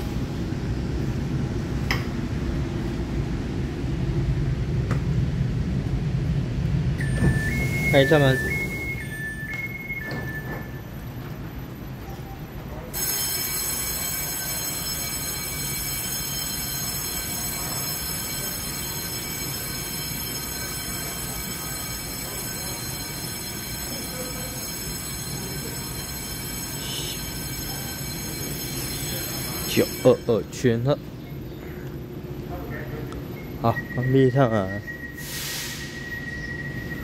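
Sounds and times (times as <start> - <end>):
electric train humming: 0.0 - 37.0
two-tone train door chime: 6.9 - 31.0, 33.4 - 37.0
high whining tones: 7.0 - 11.3.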